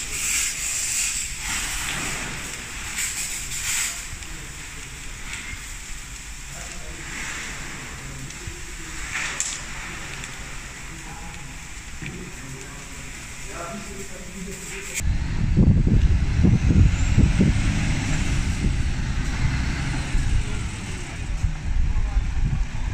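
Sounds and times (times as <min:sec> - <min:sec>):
fire hose water jet hissing: 0:00.0 - 0:22.8
fire crackling and sizzling: 0:00.0 - 0:22.9.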